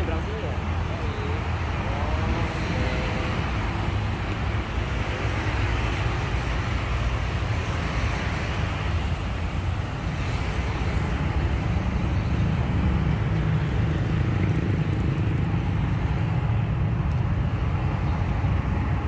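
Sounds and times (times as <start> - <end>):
cars and motorcycles passing: 0.0 - 19.0.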